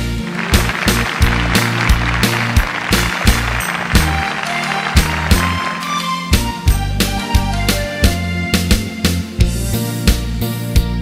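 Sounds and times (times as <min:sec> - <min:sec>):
sustained instrumental chords: 0:00.0 - 0:08.7
bass: 0:00.0 - 0:11.0
drum beat: 0:00.2 - 0:06.8.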